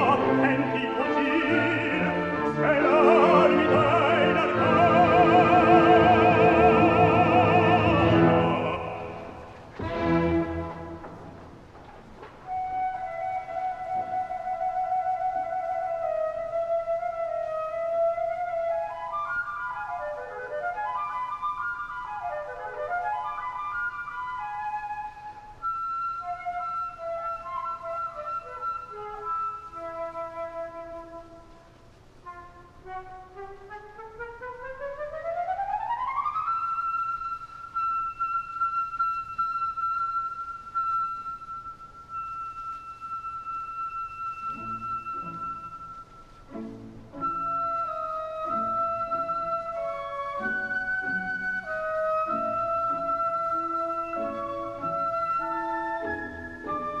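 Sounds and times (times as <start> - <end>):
orchestra playing chords: 0.0 - 12.6
solo woodwind melody: 0.0 - 57.0.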